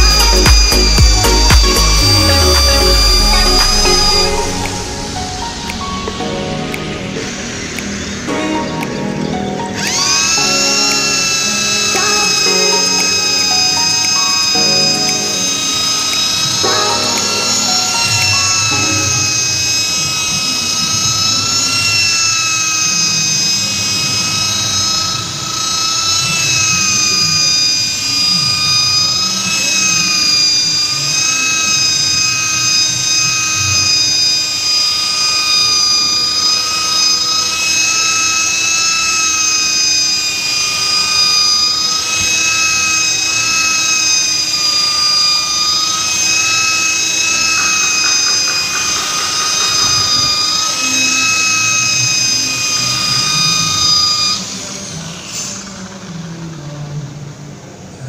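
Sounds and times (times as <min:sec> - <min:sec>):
electric polisher whining: 0:00.0 - 0:57.9.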